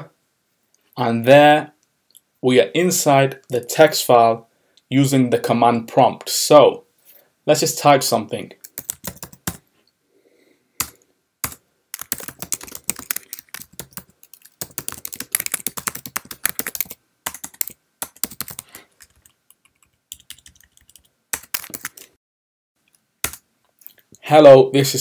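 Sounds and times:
typing on computer keyboard: 0:08.6 - 0:09.6, 0:10.8 - 0:22.1.

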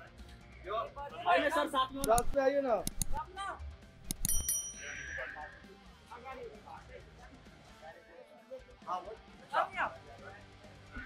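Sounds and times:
background music: 0:00.0 - 0:11.0
sharp clicks: 0:01.9 - 0:03.2, 0:04.0 - 0:04.6
bright metallic ring: 0:04.1 - 0:05.2.

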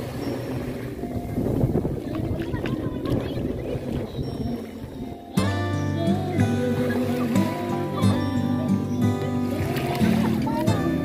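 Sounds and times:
wind noise on microphone: 0:00.0 - 0:08.3
small waves washing on sand: 0:00.0 - 0:11.0.

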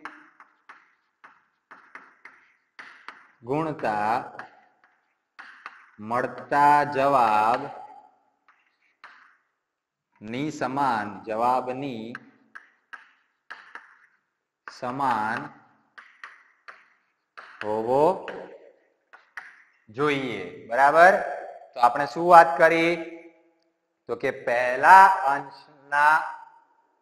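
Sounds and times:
chalk tapping on chalkboard: 0:00.0 - 0:09.7, 0:11.4 - 0:19.9.

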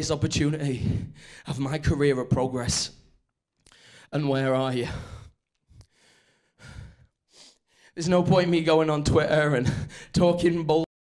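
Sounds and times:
man speaking: 0:00.0 - 0:03.0, 0:04.1 - 0:05.1, 0:08.0 - 0:10.9
man breathing into microphone: 0:03.7 - 0:04.1, 0:04.8 - 0:08.0.

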